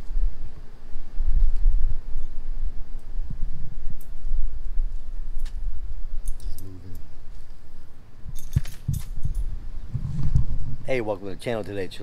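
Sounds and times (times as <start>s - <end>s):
wind rumble on microphone: 0.0s - 12.0s
light metallic jingles and clicks: 6.2s - 7.1s, 8.3s - 9.6s.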